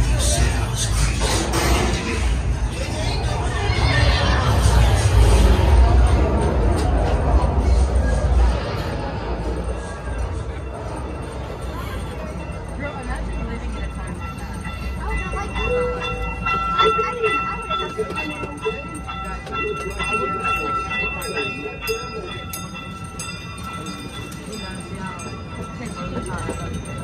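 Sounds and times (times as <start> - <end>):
indistinct voices: 0.0 - 27.0
small train rumbling: 0.0 - 27.0.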